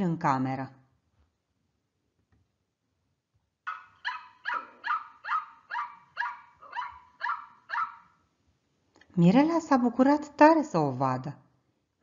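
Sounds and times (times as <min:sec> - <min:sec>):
small dog yapping: 0:03.7 - 0:08.2.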